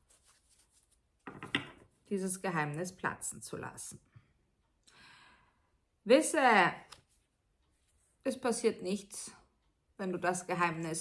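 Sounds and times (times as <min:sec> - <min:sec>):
faint breath: 0:04.8 - 0:05.8.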